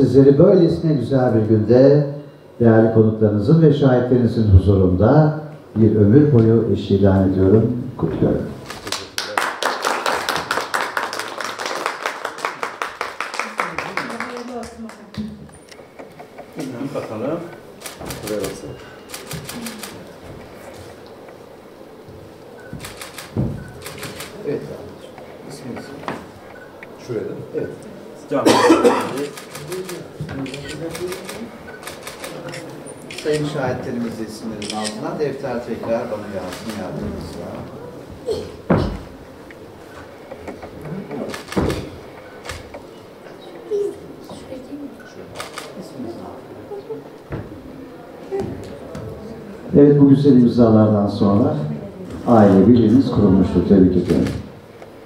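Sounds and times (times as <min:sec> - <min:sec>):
low room noise: 0:00.0 - 0:55.0
soft voices: 0:16.5 - 0:21.0, 0:26.8 - 0:33.6, 0:42.2 - 0:49.7.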